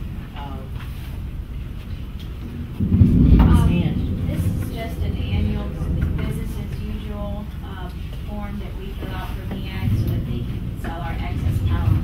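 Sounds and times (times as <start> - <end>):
loud low rumble: 2.3 - 12.0
soft voices: 3.4 - 12.0.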